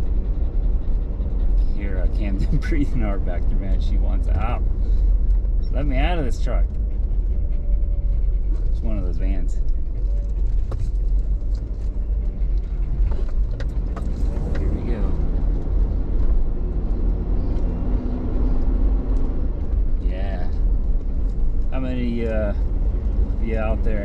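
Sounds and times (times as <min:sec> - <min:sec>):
road noise: 0:00.0 - 0:24.0
truck engine rumble: 0:00.0 - 0:24.0.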